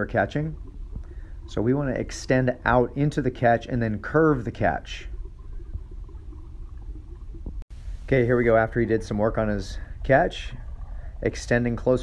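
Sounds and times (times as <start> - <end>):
faint hum: 0.0 - 12.0
low background rumble: 0.0 - 12.0.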